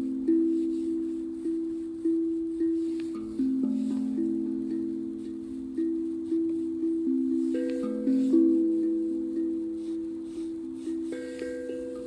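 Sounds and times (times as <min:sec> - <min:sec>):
steel tongue drum bell-like notes: 0:00.0 - 0:12.0.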